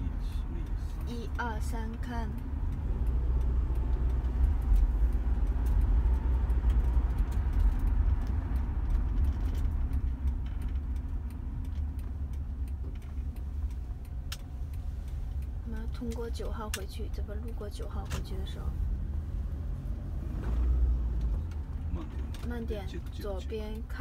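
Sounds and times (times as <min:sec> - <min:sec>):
car engine and tyres rumbling: 0:00.0 - 0:24.0.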